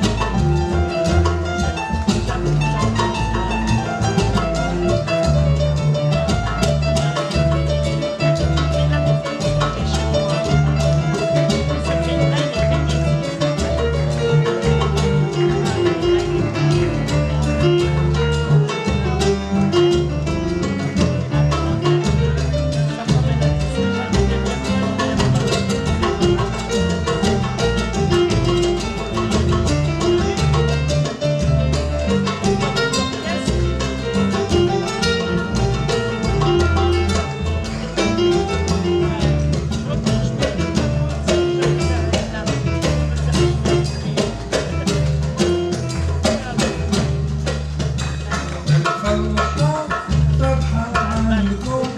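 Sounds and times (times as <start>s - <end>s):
lively latin piano music: 0.0s - 51.9s.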